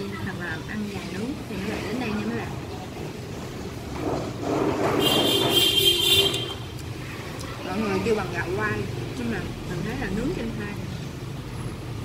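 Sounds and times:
background traffic: 0.0 - 12.0.

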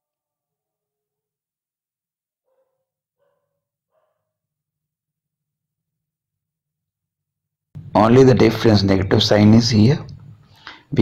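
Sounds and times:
faint dog barking: 2.5 - 4.4.

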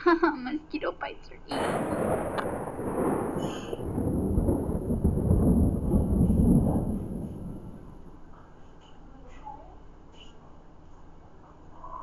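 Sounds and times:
thunder crack: 1.5 - 8.3
thunder rumbling: 1.5 - 8.3.

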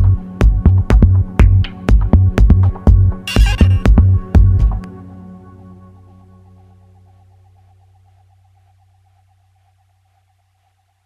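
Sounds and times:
low bass drone: 3.0 - 4.8
wobbling synth tone: 3.3 - 3.9.

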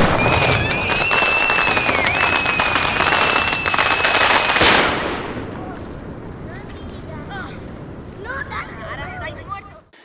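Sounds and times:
steady high whistle: 0.1 - 4.6.

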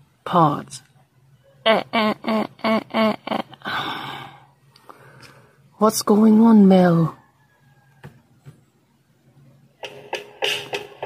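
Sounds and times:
long breathy sigh: 3.6 - 5.4.

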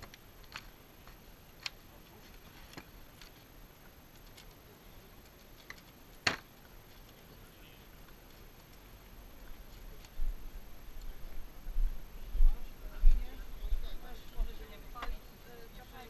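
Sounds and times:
sharp crack: 5.7 - 6.5.

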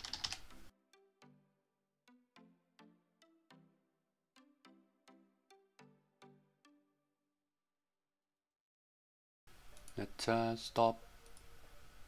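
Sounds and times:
quiet background music: 0.0 - 7.2, 9.5 - 12.0.

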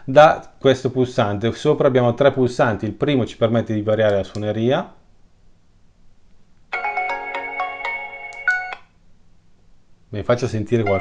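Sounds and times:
electronic doorbell melody: 6.7 - 8.9.

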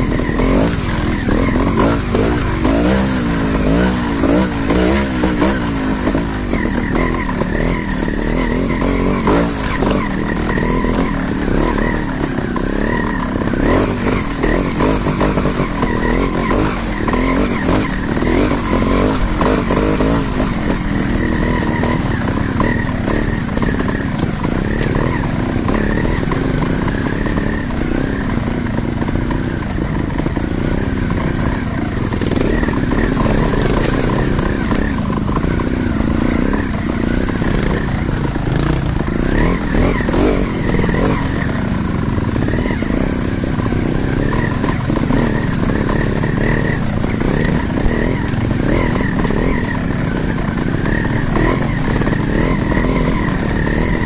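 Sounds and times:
motorcycle engine revving: 0.0 - 54.0
wheels knocking on stones: 0.0 - 54.0.

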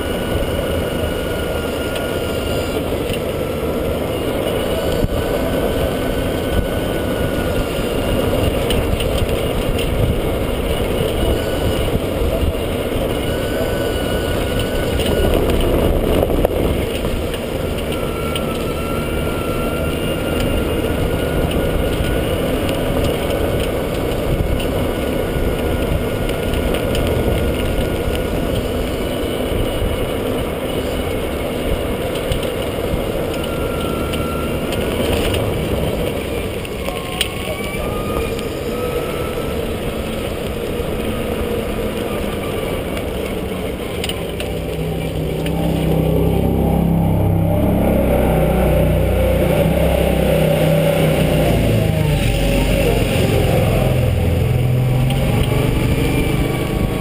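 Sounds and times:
faint motor whine: 0.0 - 57.0
tyres rumbling: 0.0 - 57.0
wind noise: 0.0 - 57.0.

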